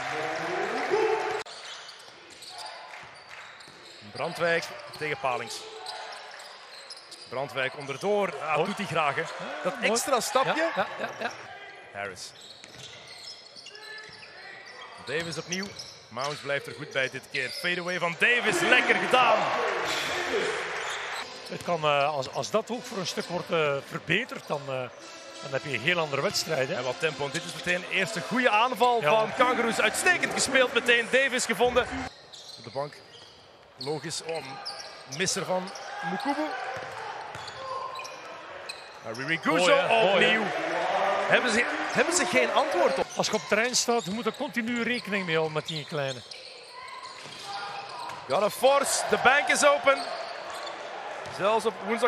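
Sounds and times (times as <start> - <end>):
sneaker squeaks: 1.5 - 8.4, 12.2 - 18.9, 19.9 - 22.5, 31.6 - 40.3, 41.8 - 48.4, 49.4 - 52.0
low arena hubbub: 13.6 - 32.7, 33.6 - 52.0.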